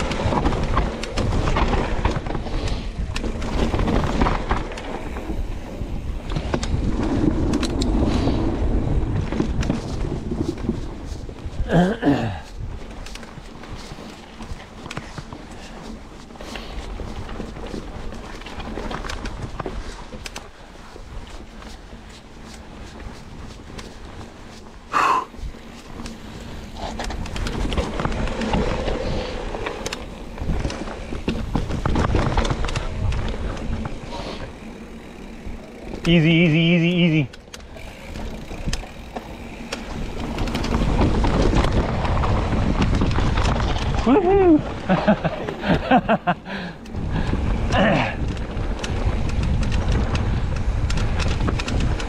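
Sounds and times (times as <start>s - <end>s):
bike knocks and rattles: 0.0s - 52.0s
bike tyre rumble on dirt: 0.0s - 52.0s.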